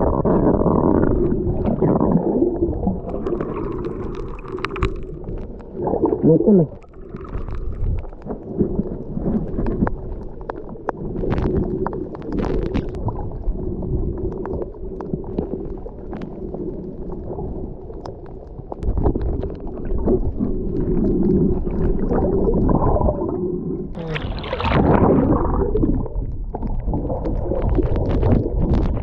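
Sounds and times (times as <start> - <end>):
muffled underwater water wash: 0.0 - 29.0
short clicks and crackles: 9.6 - 13.0.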